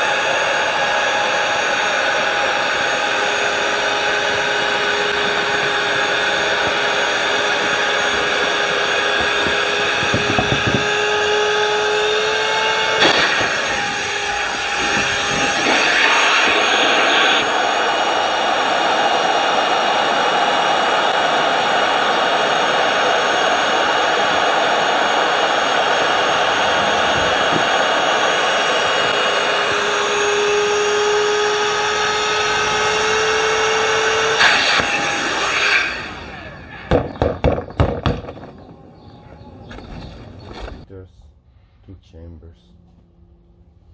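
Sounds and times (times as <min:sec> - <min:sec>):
cordless air pump running: 0:00.0 - 0:37.2.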